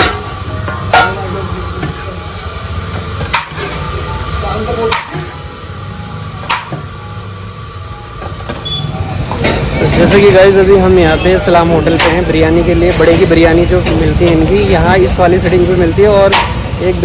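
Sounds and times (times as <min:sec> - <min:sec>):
metal utensils clinking on pot: 0:00.0 - 0:02.1.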